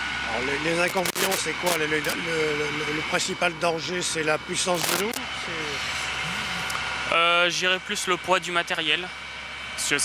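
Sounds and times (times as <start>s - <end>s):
steady engine hum: 0.0s - 10.0s.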